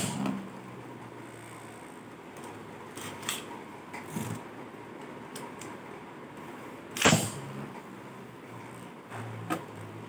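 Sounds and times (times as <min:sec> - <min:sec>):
launcher ripping: 0:07.0 - 0:07.4.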